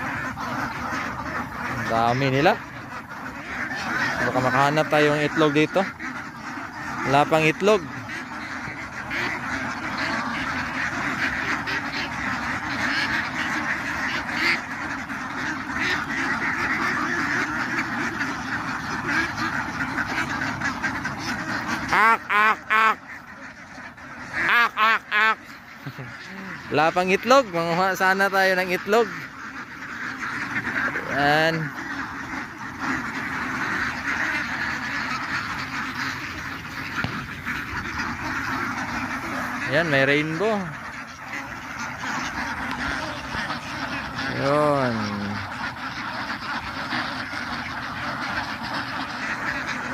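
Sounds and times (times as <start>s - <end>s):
flock of ducks quacking: 0.0s - 49.9s.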